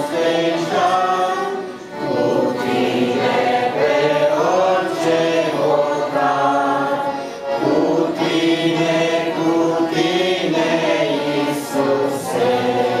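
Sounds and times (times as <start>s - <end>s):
small choir singing: 0.0s - 13.0s.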